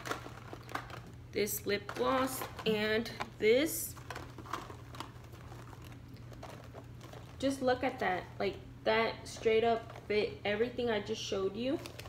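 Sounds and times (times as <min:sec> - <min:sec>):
plastic bag crinkling: 0:00.0 - 0:08.5, 0:09.3 - 0:10.4, 0:11.6 - 0:12.0.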